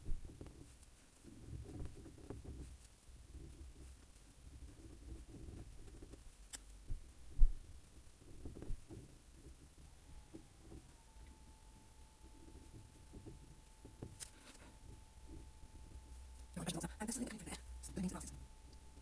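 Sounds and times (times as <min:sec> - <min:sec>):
faint steady whine: 0:00.0 - 0:19.0.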